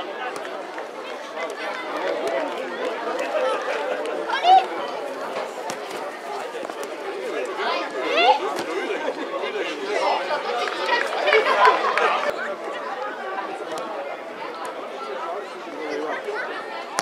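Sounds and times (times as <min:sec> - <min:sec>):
voices chattering and shouting: 0:00.0 - 0:17.0.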